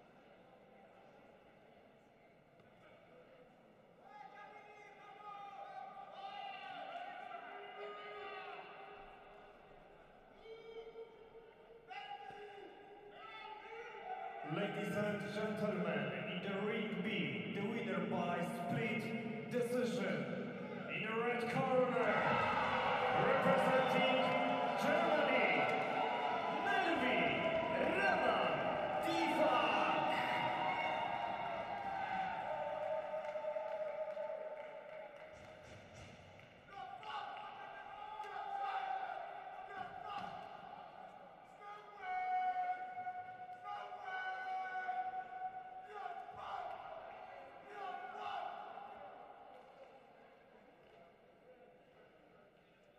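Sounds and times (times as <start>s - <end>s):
voices echoing in a hall: 0.0s - 52.9s.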